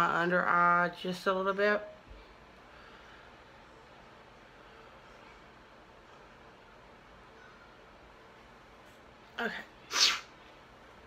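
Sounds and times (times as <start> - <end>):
woman sneezing: 9.9 - 10.3.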